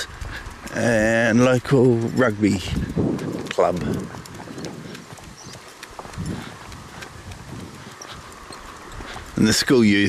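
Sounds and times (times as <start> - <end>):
footsteps and dog paws on concrete: 0.0 - 10.0.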